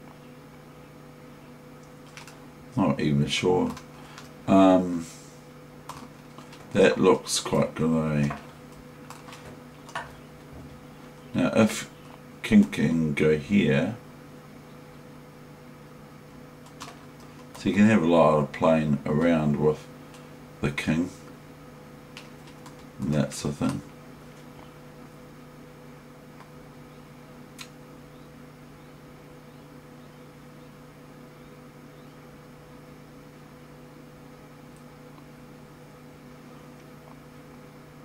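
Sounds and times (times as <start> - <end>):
desktop computer humming: 0.0 - 38.0.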